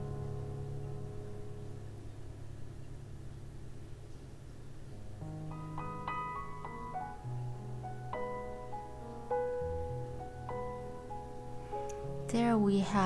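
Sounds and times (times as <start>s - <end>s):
soft piano music: 0.0s - 13.0s.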